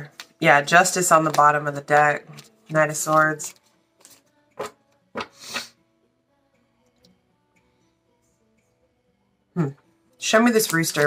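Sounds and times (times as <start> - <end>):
cards being shuffled: 0.0 - 1.6, 2.2 - 5.7, 10.5 - 11.0
faint background music: 0.0 - 11.0.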